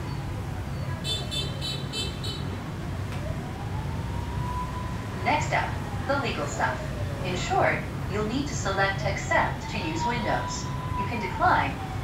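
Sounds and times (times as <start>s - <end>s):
background traffic rumble: 0.0s - 12.0s.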